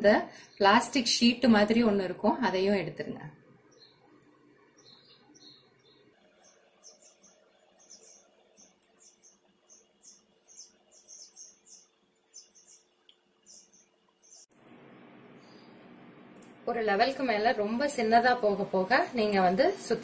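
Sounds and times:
low steady hum: 0.0 - 20.0
small birds chirping: 3.6 - 14.5, 15.4 - 18.6.

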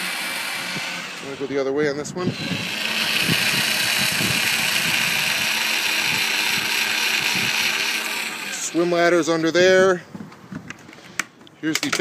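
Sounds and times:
electric actuator running: 0.0 - 9.3.

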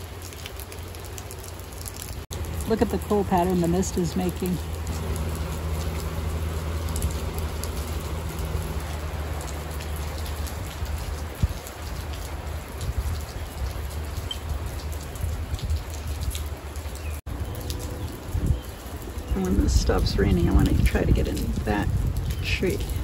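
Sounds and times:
low steady rumble: 0.0 - 16.6
steady rain falling: 0.0 - 23.0.

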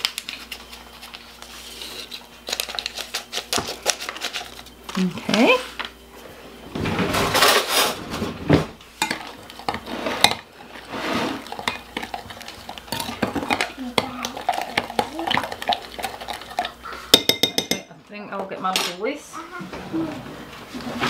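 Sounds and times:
spoon clinking against glass jug: 17.2 - 17.9.

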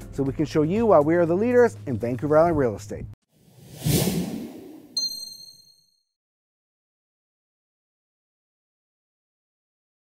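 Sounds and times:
whoosh: 3.4 - 5.0
bright high ding: 5.0 - 6.0.

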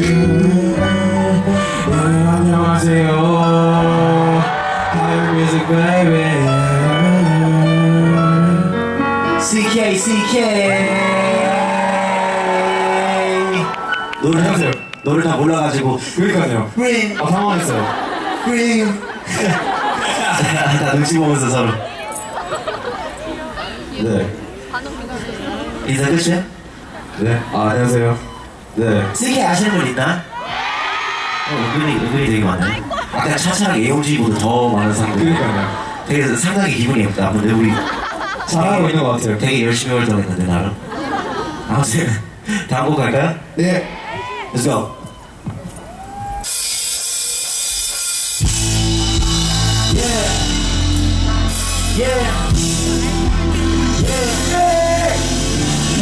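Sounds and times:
crowd chatter: 0.0 - 56.0
rock band playing: 46.2 - 56.0
cymbals washing: 46.3 - 56.0.

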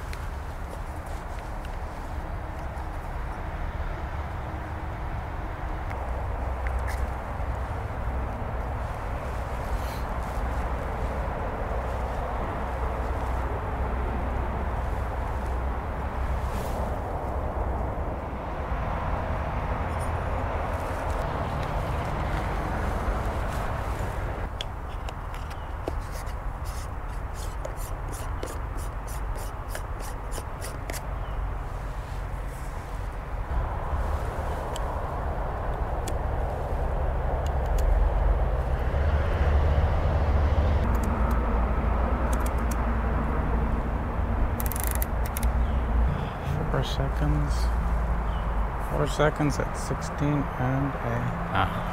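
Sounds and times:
distant traffic: 0.0 - 51.9.

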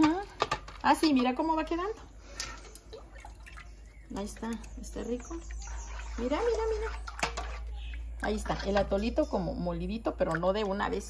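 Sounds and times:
liquid dripping through colander: 1.1 - 11.0.

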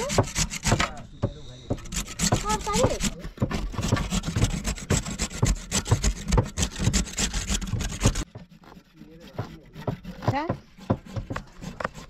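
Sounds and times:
cabbage scraping on grater: 0.0 - 1.0, 1.7 - 12.0.

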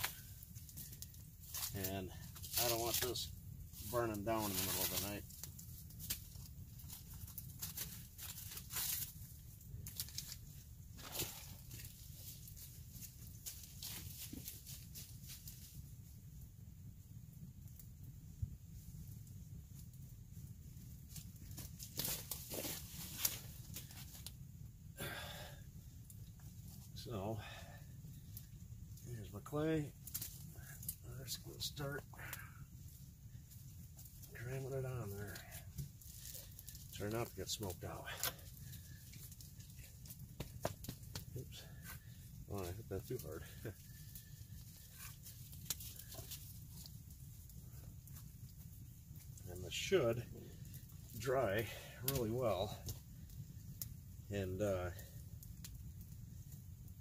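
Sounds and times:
campfire crackling and popping: 0.0 - 57.0.

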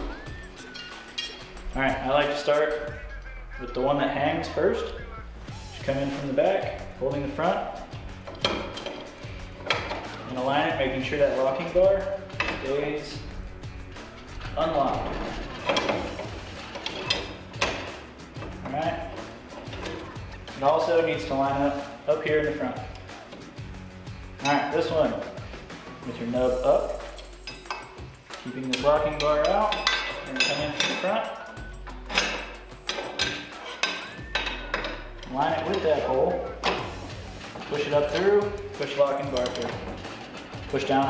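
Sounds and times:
metal parts clicking and knocking: 8.1 - 21.8, 26.8 - 41.0.

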